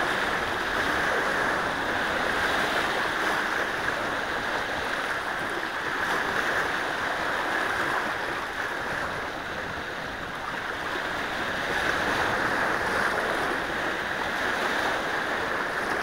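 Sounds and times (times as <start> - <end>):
waves splashing among boulders: 0.0 - 16.0.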